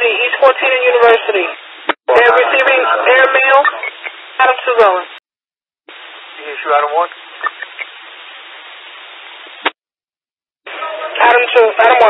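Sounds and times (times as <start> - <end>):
radio hiss: 0.0 - 5.2, 5.9 - 9.8
radio squelch burst: 6.4 - 8.0.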